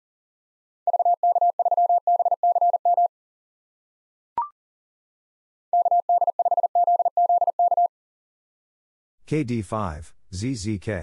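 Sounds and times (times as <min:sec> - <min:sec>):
morse code tone: 0:05.8 - 0:07.9.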